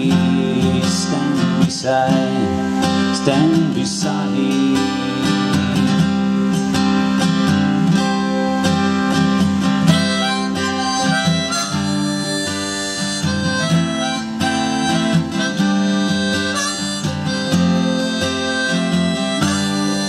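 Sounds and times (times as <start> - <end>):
acoustic guitar strumming: 0.0 - 20.0
harmonica melody: 0.0 - 20.0.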